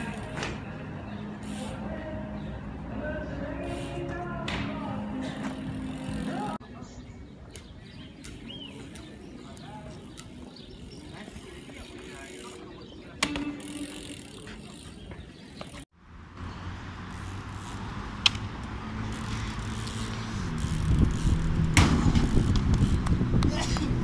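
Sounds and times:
low street noise: 0.0s - 24.0s
bike wheels landing knocks: 21.6s - 23.1s.

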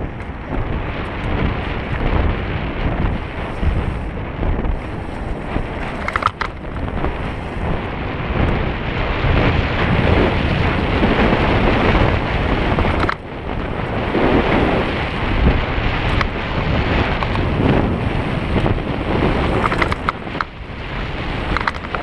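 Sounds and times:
bike rumble on trail: 0.0s - 22.0s
wind rushing over microphone: 0.0s - 22.0s.

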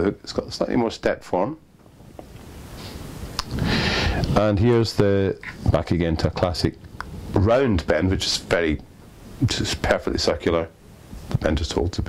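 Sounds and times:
clothing rubbing on microphone: 1.9s - 3.4s.

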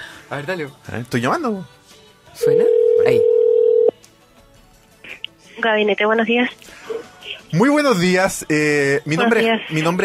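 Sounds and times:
telephone ringback tone: 2.4s - 3.9s.

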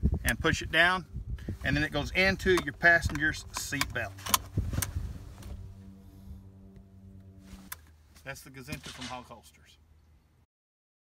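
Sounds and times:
steady low hum: 0.0s - 10.5s
handling noise: 1.6s - 9.3s
seat-belt buckle latching clicks: 2.5s - 4.9s.

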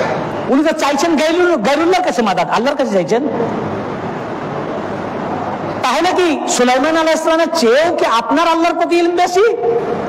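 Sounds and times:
steady background hum: 0.0s - 10.0s
man speaking: 5.8s - 9.8s.

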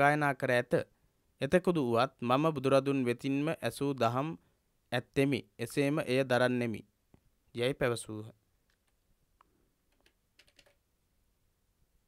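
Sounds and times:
computer keyboard typing: 9.9s - 10.8s.

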